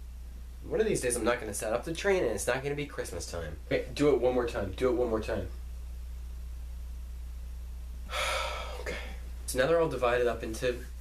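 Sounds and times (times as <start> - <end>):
low electrical hum: 0.0 - 11.0
man speaking: 0.6 - 5.6, 8.7 - 11.0
man's sharp breath: 8.1 - 9.2.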